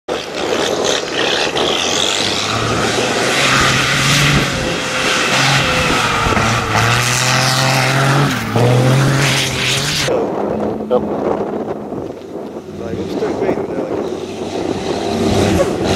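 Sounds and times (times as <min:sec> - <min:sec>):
diesel truck engine revving: 0:01.0 - 0:10.1, 0:14.0 - 0:15.9.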